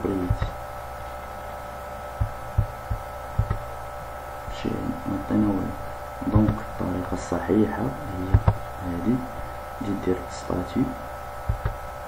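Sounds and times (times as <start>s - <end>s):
electrical hum: 0.0s - 12.0s
dull low thumps: 0.2s - 0.6s, 2.2s - 3.8s, 8.2s - 8.8s, 11.4s - 11.8s.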